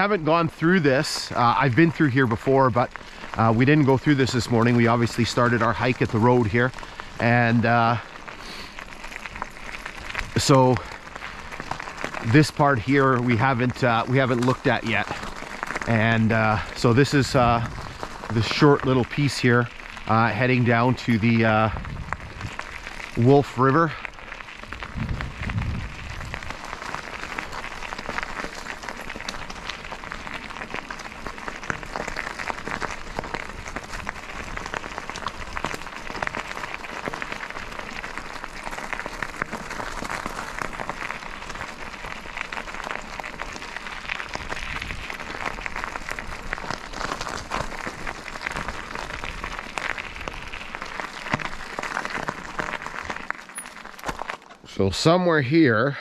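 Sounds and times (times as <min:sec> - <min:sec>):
bicycle tyres crackling on gravel: 0:00.0 - 0:56.0
low bump: 0:24.8 - 0:26.5.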